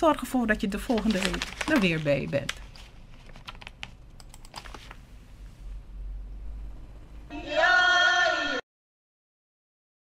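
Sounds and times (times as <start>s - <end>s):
low steady hum: 0.0s - 7.5s
computer keys tapping: 3.4s - 4.8s.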